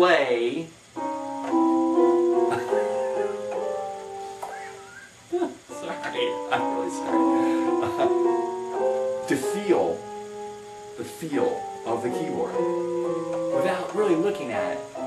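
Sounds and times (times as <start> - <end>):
electronic keyboard chords: 0.9 - 15.0.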